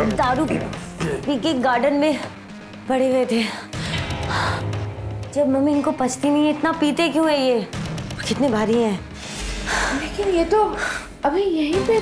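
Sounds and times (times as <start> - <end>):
background music: 0.0 - 12.0
woman speaking: 9.9 - 12.0.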